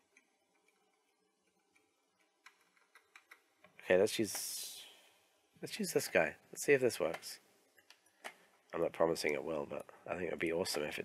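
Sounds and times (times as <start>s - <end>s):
computer mouse clicking: 0.0s - 3.7s.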